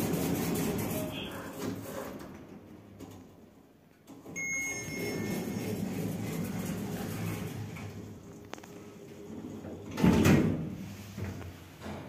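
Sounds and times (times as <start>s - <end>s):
lift bell ding: 4.4s - 5.4s
lift doors sliding rumble: 4.7s - 12.0s.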